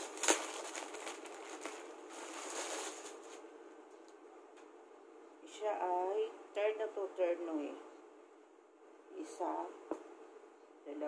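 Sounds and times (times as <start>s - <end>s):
packaging rustling: 0.0s - 3.4s.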